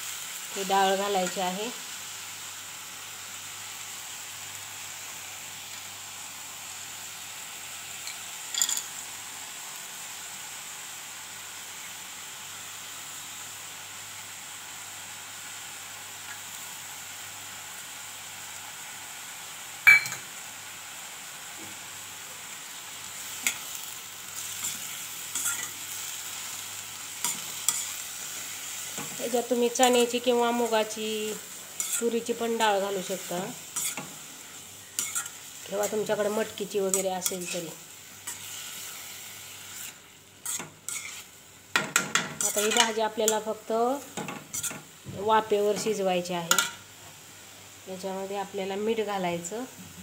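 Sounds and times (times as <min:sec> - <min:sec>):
greens sizzling in a pan: 0:00.0 - 0:50.0
sharp metal clink: 0:19.9 - 0:20.2
spatula scraping a steel pan: 0:35.0 - 0:35.4, 0:39.8 - 0:41.3, 0:44.5 - 0:44.8.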